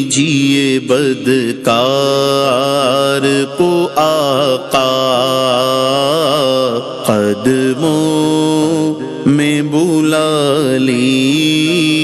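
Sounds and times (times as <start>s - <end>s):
man singing unaccompanied: 0.0s - 12.0s.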